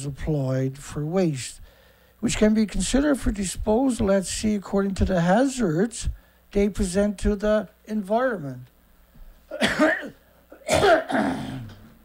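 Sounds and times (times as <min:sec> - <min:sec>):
man coughing: 0:09.5 - 0:11.8.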